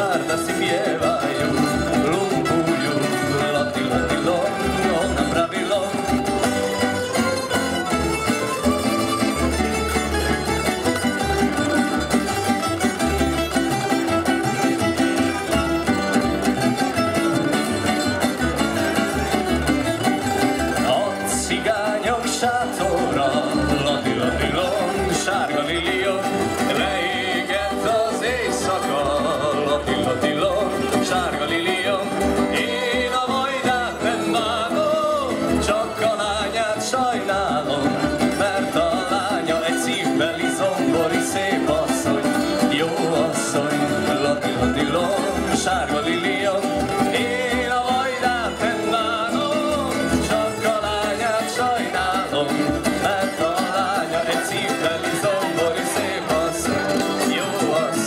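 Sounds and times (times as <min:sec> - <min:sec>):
double bass: 0:00.0 - 0:58.0
guitars: 0:00.0 - 0:58.0
small plucked string instruments: 0:00.0 - 0:58.0.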